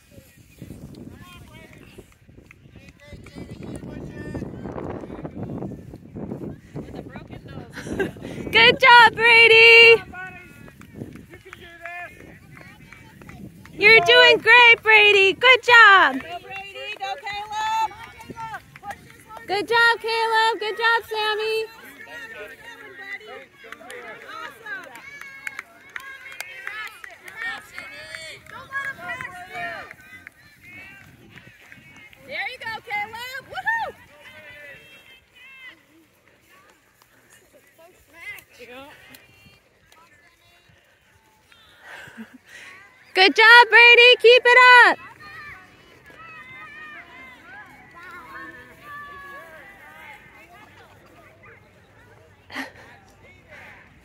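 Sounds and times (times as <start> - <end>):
people cheering: 8.5 - 35.8, 43.2 - 51.0
children calling and chattering: 12.2 - 23.6, 32.6 - 54.0.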